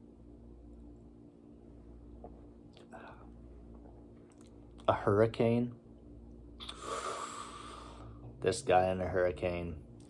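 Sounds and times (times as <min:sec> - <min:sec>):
man breathing noisily: 0:06.6 - 0:08.3.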